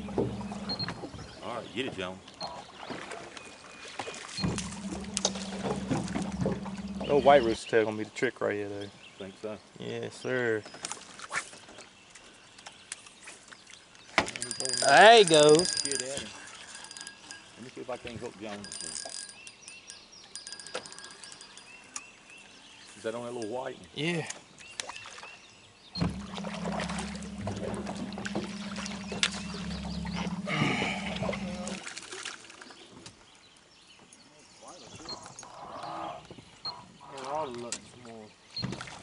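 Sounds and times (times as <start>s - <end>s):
boat motor humming: 0.0s - 1.4s, 4.4s - 7.6s, 14.5s - 17.6s, 26.0s - 31.9s.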